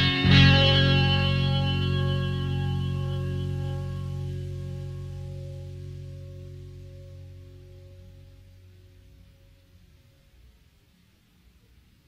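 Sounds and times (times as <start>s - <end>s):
distorted electric guitar chord: 0.0s - 9.9s.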